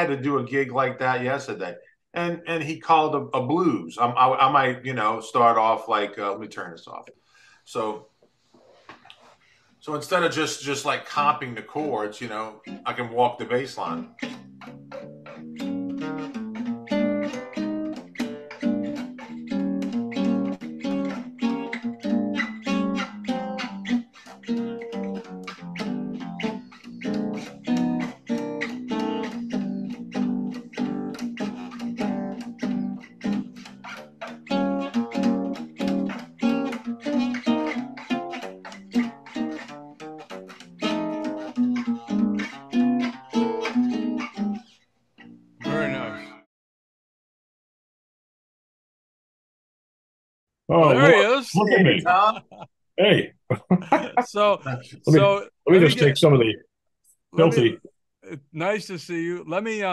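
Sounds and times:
jazz guitar playing: 0:12.2 - 0:46.5, 0:50.7 - 0:52.4, 0:54.9 - 0:56.5, 0:57.4 - 0:57.8.

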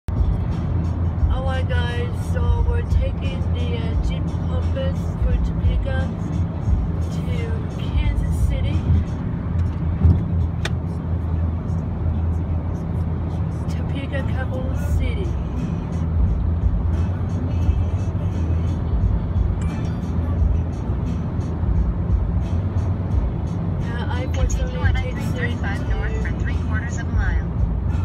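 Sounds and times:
road and engine rumble: 0:00.0 - 0:28.0
music playing: 0:00.1 - 0:28.0.

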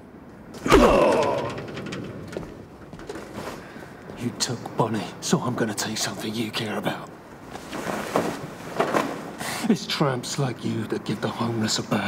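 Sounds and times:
man's pained cry: 0:00.6 - 0:01.8.

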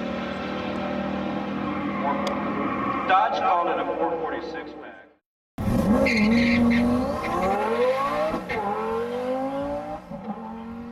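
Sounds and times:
car engine accelerating hard: 0:05.6 - 0:10.9.

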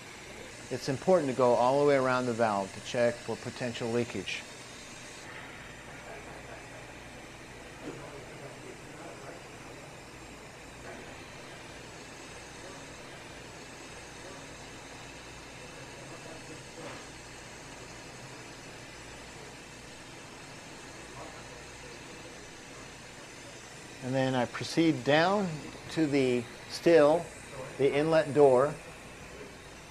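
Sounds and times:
machinery hum with hiss: 0:00.0 - 0:29.9.

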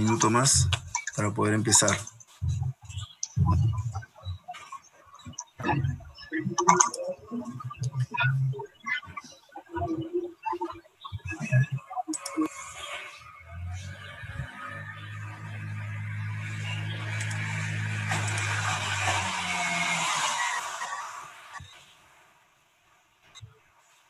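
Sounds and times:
faint clicks: 0:00.1 - 0:13.1
low motor-like hum: 0:13.2 - 0:20.8.

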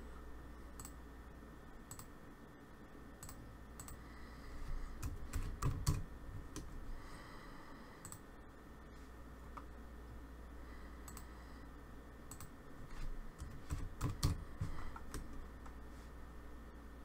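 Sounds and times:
computer keyboard typing: 0:03.2 - 0:04.0, 0:05.0 - 0:06.7, 0:12.3 - 0:12.6, 0:13.3 - 0:15.4.

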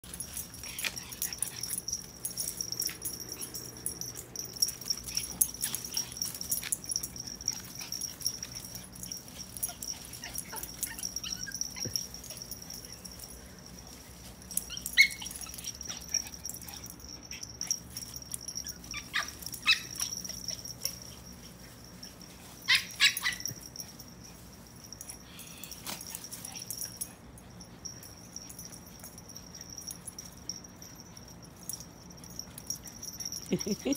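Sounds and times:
small dogs yipping and barking: 0:00.0 - 0:33.9.

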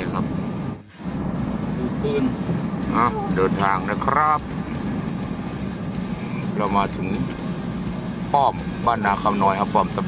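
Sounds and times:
car road and engine noise: 0:00.0 - 0:10.0
background music: 0:01.2 - 0:10.0.

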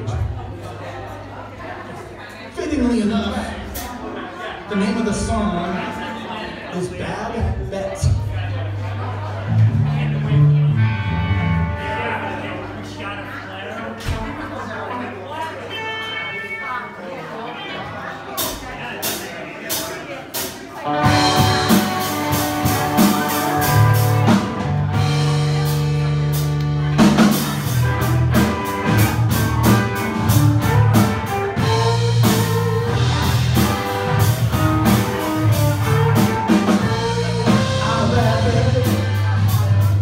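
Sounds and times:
crowd chatter: 0:00.0 - 0:40.0
live rock band playing: 0:02.7 - 0:14.6, 0:15.4 - 0:40.0.

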